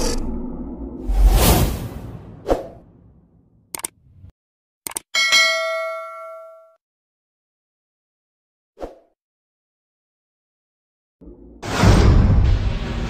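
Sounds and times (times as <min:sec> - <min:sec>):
whoosh: 0:00.0 - 0:03.4
quick double clicks: 0:03.7 - 0:04.0, 0:04.9 - 0:05.1
bell-like ding: 0:05.2 - 0:06.8.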